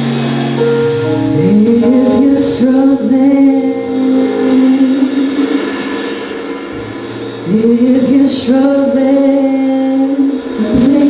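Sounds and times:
band holding long note: 0:00.0 - 0:11.0.

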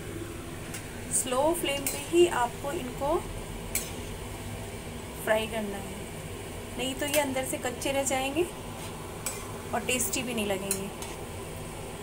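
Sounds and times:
food sizzling in oil: 0:00.0 - 0:12.0
metal spoon clicking against pan: 0:01.8 - 0:02.0, 0:10.7 - 0:11.1.

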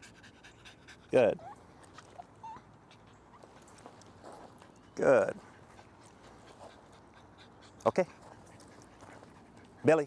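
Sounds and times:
small dog whimpering: 0:01.1 - 0:03.6.

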